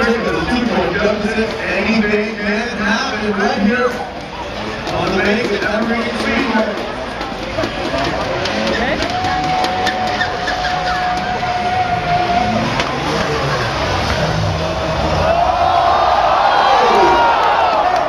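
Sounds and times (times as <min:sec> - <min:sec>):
car engines revving high: 0:00.0 - 0:18.0.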